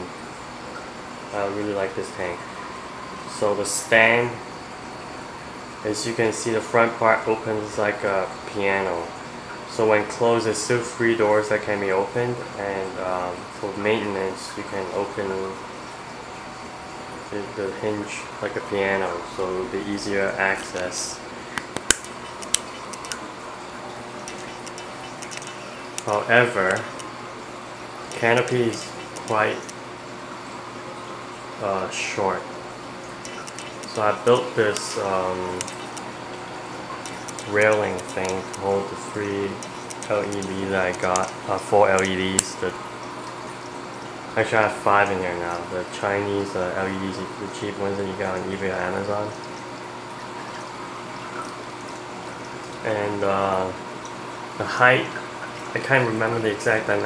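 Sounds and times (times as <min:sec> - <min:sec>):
aquarium water running and bubbling: 0:00.0 - 0:57.0
faint steady hum: 0:00.0 - 0:57.0
faint clicks and drips: 0:17.1 - 0:32.2, 0:32.8 - 0:57.0.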